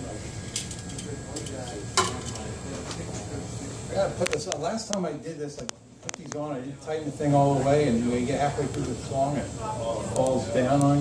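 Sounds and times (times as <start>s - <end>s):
low room murmur: 0.0s - 11.0s.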